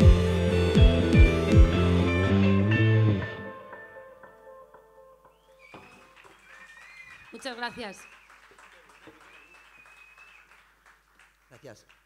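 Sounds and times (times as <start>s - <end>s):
audience whistling: 5.3s - 11.0s.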